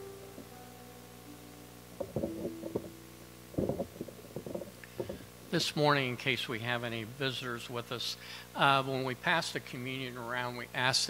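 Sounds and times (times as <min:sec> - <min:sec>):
sound-system hum: 0:00.0 - 0:10.9
microphone handling bumps: 0:02.0 - 0:05.3.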